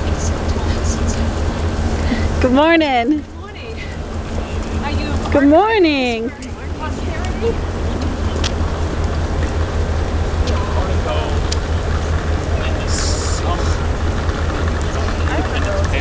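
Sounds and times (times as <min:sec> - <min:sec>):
faint voices of passers-by: 0:00.0 - 0:16.0
street noise rumble: 0:00.0 - 0:16.0.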